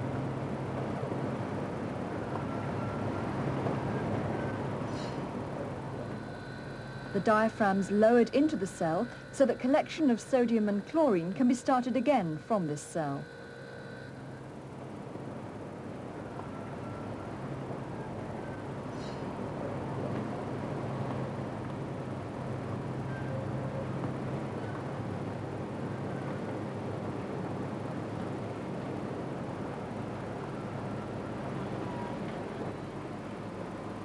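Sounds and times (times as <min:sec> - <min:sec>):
constant low hum: 0:00.0 - 0:34.0
machinery rumble: 0:00.0 - 0:34.0.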